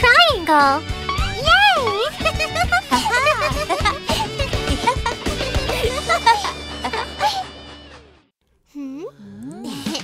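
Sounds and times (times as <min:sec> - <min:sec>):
cartoon children's song music: 0:00.0 - 0:07.0.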